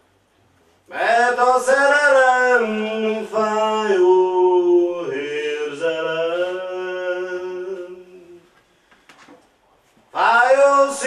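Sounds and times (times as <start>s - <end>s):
man singing a lullaby: 0.9s - 8.5s, 10.2s - 11.0s.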